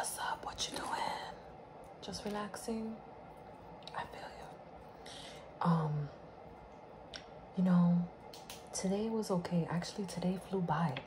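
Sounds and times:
soft whisper: 0:00.0 - 0:01.5, 0:03.9 - 0:06.2.

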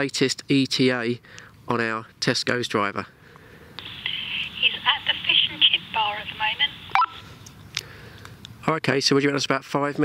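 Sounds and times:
woman's voice over walkie-talkie: 0:03.8 - 0:07.2
short beep: 0:06.9 - 0:07.3.

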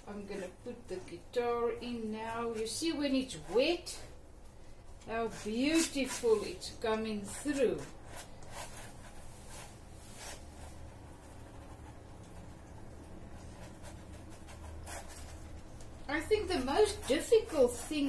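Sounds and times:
paintbrush scratching on canvas: 0:00.0 - 0:04.1, 0:05.1 - 0:18.0
low room hum: 0:00.0 - 0:18.0.

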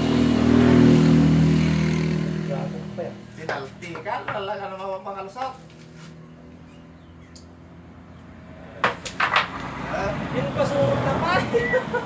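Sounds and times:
motor vehicle engine passing: 0:00.0 - 0:12.0.

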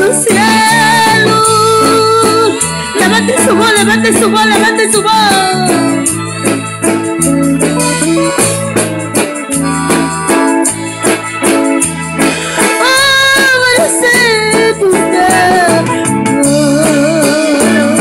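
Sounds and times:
drums keeping steady beat: 0:00.0 - 0:18.0
electric bass sustained notes: 0:00.0 - 0:18.0
keyboard organ sound: 0:00.0 - 0:18.0.

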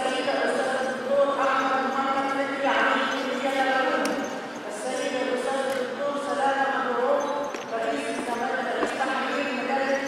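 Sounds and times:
woman speaking into a microphone: 0:00.0 - 0:10.0.

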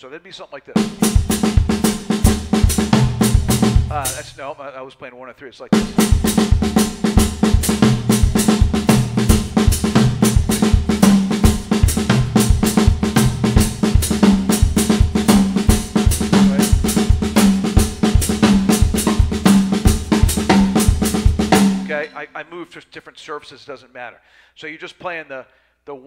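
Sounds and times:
acoustic drum kit playing: 0:00.8 - 0:04.5, 0:05.7 - 0:22.4.

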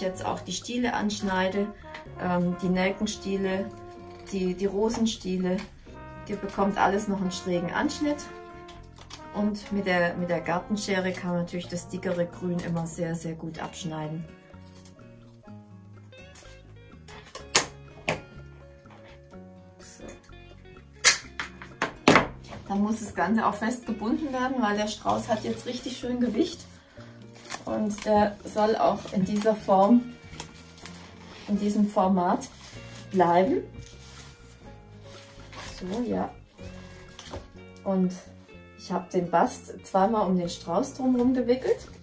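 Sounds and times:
woman speaking: 0:00.0 - 0:03.7, 0:04.3 - 0:08.4, 0:09.3 - 0:14.3, 0:22.7 - 0:26.7, 0:27.6 - 0:30.1, 0:31.4 - 0:33.8, 0:35.6 - 0:36.4, 0:37.8 - 0:42.0
background music with sustained notes: 0:00.0 - 0:42.0
rustling of raffia and leaves: 0:24.8 - 0:37.8
garden shears snipping stems: 0:27.2 - 0:34.3.

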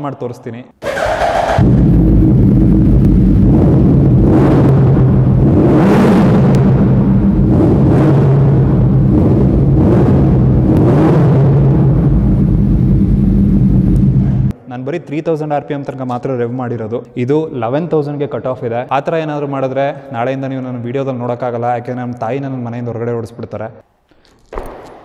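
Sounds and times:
motorcycle engine revving: 0:00.8 - 0:14.5.

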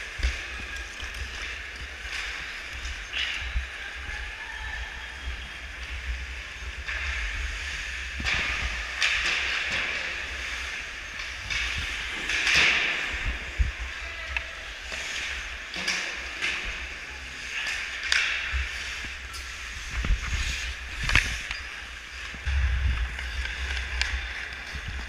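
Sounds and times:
low camera rumble: 0:00.0 - 0:25.0
skates scraping on ice: 0:14.6 - 0:25.0.

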